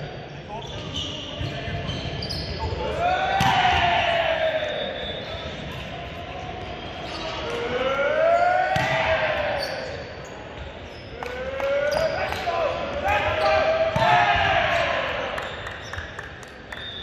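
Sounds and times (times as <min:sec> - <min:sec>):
players shouting: 0:02.7 - 0:05.1, 0:07.0 - 0:10.0, 0:11.2 - 0:15.4
volleyball struck by hands: 0:03.4 - 0:03.8, 0:08.7 - 0:09.2, 0:13.9 - 0:14.6.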